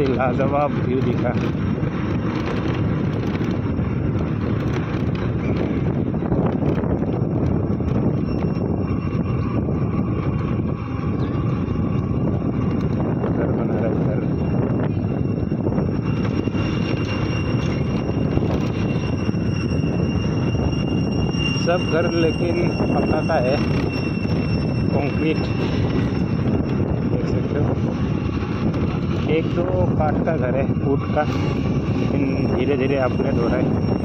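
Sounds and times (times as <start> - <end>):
moving vehicle rumble: 0.0 - 34.0
wind noise on microphone: 0.0 - 34.0
thin steady high tone: 13.8 - 34.0.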